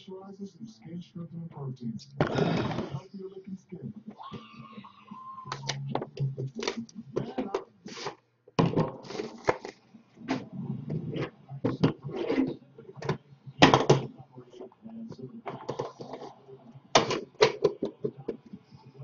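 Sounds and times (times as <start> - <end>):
card boxes clicking and knocking: 17.0 - 18.4.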